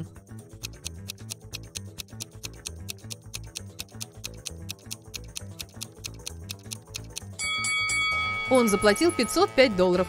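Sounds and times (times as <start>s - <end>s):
background music: 0.0s - 10.0s
clock-like ticking: 0.5s - 7.4s
bell-like chime: 7.4s - 9.7s.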